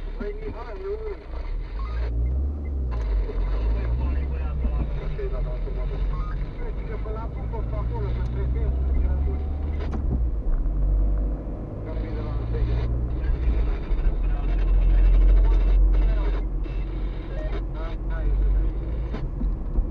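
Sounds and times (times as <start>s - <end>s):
car engine and road noise: 0.0s - 19.9s.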